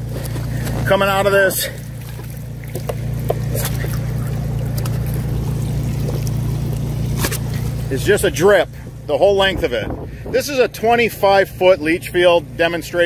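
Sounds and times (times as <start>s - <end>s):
water trickling onto plastic sheeting: 0.0s - 7.9s
low machine hum: 0.0s - 13.0s.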